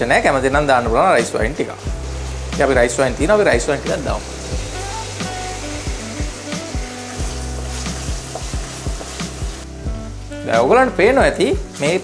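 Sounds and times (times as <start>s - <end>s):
paste sizzling in hot oil: 0.1s - 12.0s
background music with a beat: 0.8s - 11.9s.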